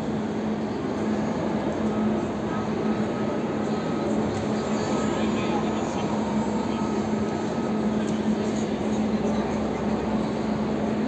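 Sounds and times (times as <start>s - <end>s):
chatter of many people: 0.0s - 11.0s
steady low hum: 0.0s - 11.0s.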